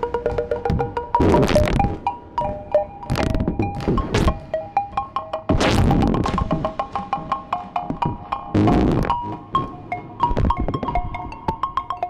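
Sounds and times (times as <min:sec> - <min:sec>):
synthesizer blips: 0:00.7 - 0:04.5, 0:05.5 - 0:11.1.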